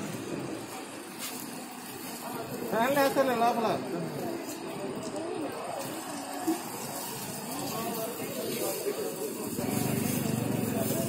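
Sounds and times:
street noise: 0.0s - 11.0s
vehicle running close by: 9.5s - 11.0s.

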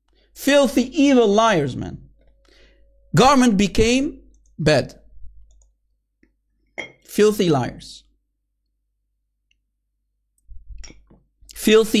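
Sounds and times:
man speaking: 0.4s - 2.1s, 3.1s - 5.1s, 11.5s - 12.0s.

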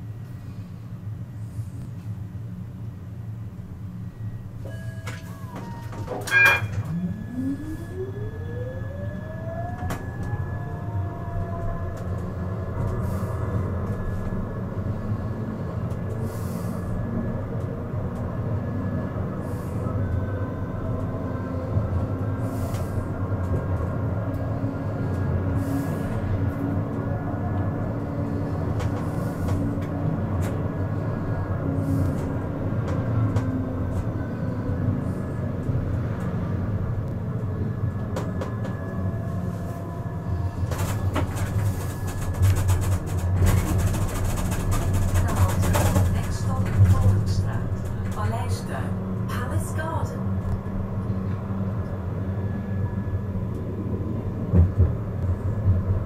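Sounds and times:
tram wheels rumbling on rails: 0.0s - 56.0s
clicking and rattle: 40.6s - 48.3s.

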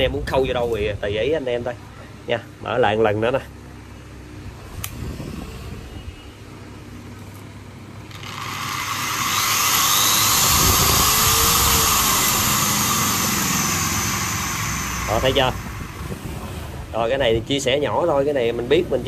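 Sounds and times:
angle grinder whine: 8.0s - 17.4s.

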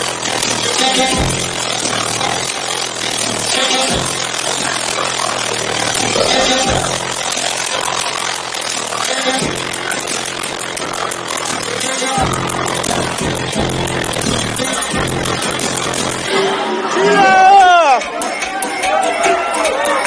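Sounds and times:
crowd din: 0.0s - 20.0s
loud dance music with heavy bass: 0.0s - 20.0s.

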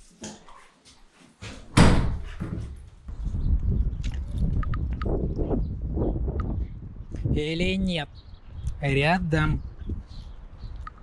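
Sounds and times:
door banging shut: 1.4s - 2.9s.

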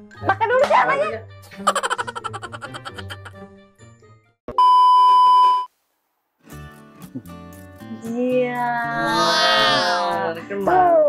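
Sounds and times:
loud steady bleep tone: 4.6s - 5.7s.

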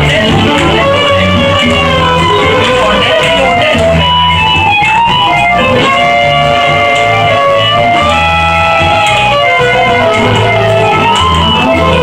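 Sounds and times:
amplified accompaniment with bass line: 0.0s - 12.0s
violin melody: 0.0s - 12.0s.

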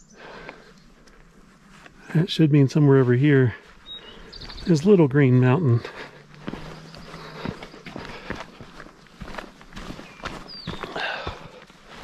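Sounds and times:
footsteps on rocky dirt trail: 0.2s - 12.0s.

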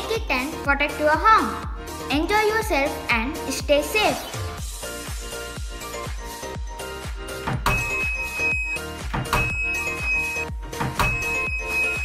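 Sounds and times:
background music with steady beat: 0.0s - 12.0s
high-pitched buzzer beep: 7.7s - 12.0s.

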